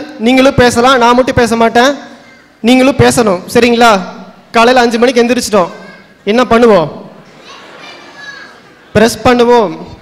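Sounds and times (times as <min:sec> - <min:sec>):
man speaking through microphone: 0:00.0 - 0:07.2, 0:08.9 - 0:10.0.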